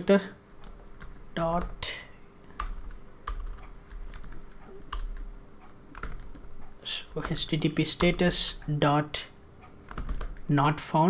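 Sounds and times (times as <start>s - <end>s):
computer keyboard keystrokes: 0.5s - 8.8s, 9.6s - 10.5s.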